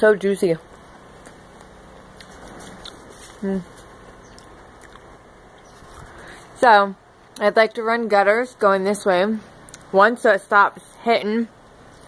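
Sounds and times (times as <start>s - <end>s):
wet chewing mouth clicks: 1.2s - 6.2s.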